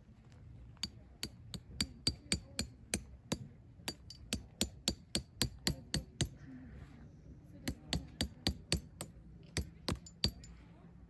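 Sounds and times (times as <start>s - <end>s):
hammer tapping metal tent stake: 0.8s - 6.4s, 7.6s - 10.5s.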